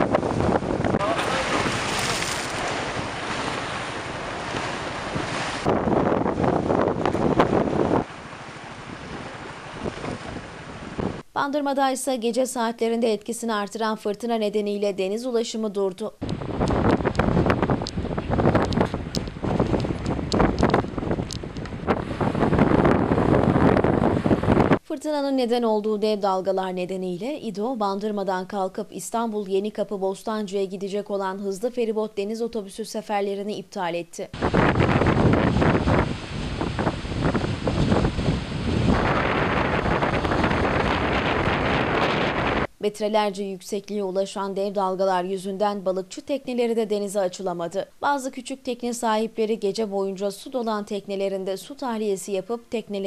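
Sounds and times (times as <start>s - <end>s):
rough water churning: 0.0s - 11.2s, 34.4s - 42.7s
storm wind buffeting microphone: 0.0s - 11.2s, 16.2s - 24.8s, 34.3s - 42.7s
waves breaking against rocks: 0.0s - 11.2s.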